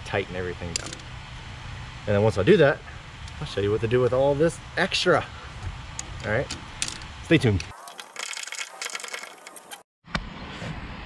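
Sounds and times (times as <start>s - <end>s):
metal ratchet rattling and clicking: 0.7s - 1.0s, 6.0s - 9.7s.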